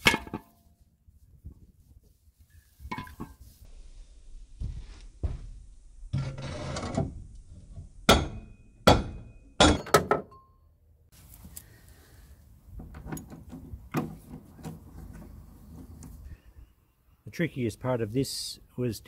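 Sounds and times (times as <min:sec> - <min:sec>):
metal knocks and clanks: 0:06.1 - 0:10.4
rasping scrape: 0:06.2 - 0:07.0.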